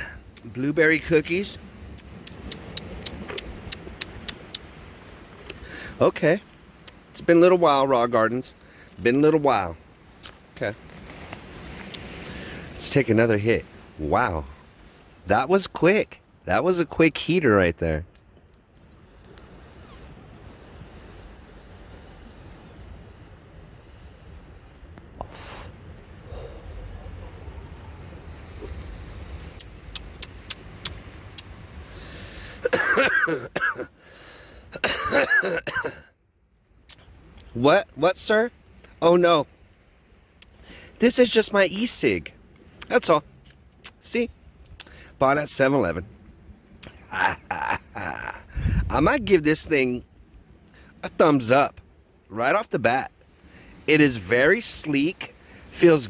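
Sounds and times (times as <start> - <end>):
wind and surf rumble: 0.0 - 56.0
faint sharp clicks: 1.9 - 4.8, 6.8 - 7.0, 29.5 - 31.8
wind rumbling on microphone: 18.3 - 32.0, 48.4 - 49.6
short hiss: 25.2 - 25.8.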